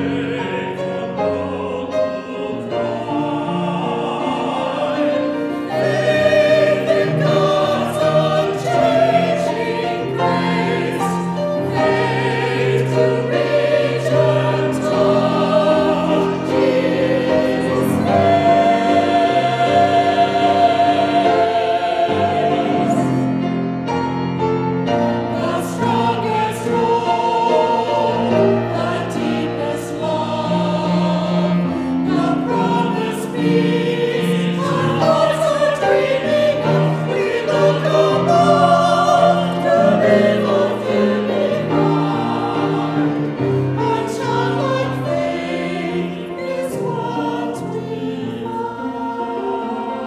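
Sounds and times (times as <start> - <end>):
mixed choir singing: 0.0 - 50.0.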